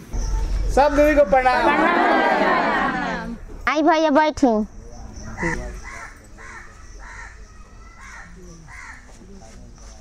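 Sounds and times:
bird calling: 4.7s - 10.0s.

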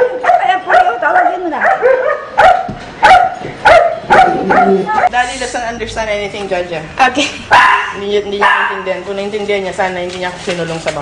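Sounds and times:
dog barking high-pitched: 0.0s - 5.1s, 7.5s - 8.9s.

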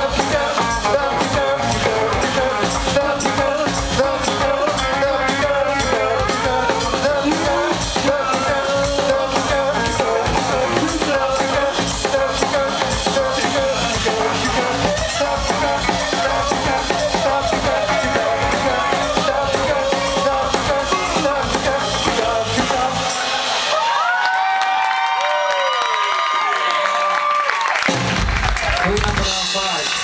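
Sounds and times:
drum kit steady beat: 0.0s - 24.5s, 27.8s - 30.0s
saxophones playing: 0.4s - 23.2s.

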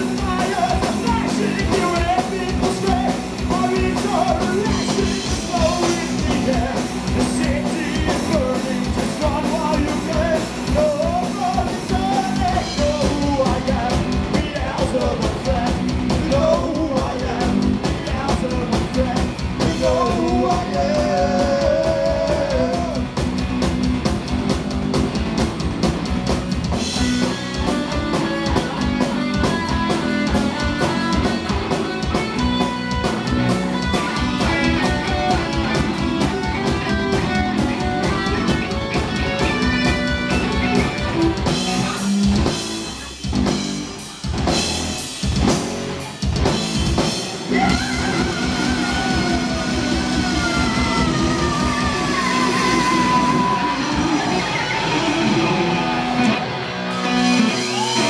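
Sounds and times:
heavy metal band playing live: 0.0s - 58.0s
guitar lead sliding downward: 47.6s - 58.0s.

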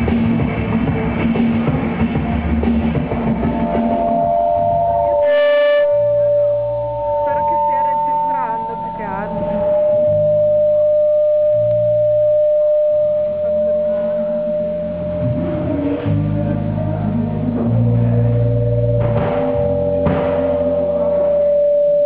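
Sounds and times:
electronic folk music: 0.0s - 22.0s
pulsing bass: 0.0s - 22.0s.

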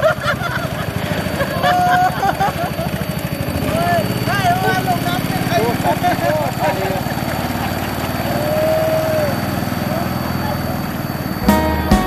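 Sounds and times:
boat engine running: 0.0s - 12.0s.

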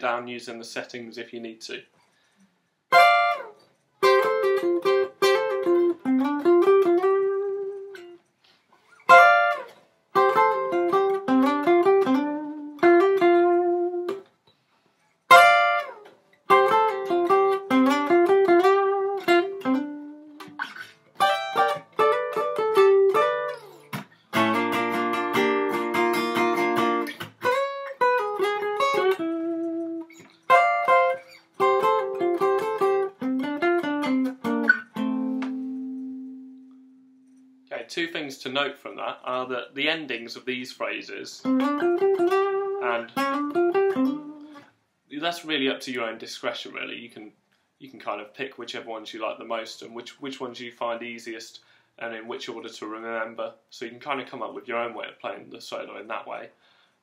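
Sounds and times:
acoustic guitar solo: 2.9s - 8.2s, 8.9s - 14.2s, 15.3s - 37.6s, 41.4s - 44.6s.

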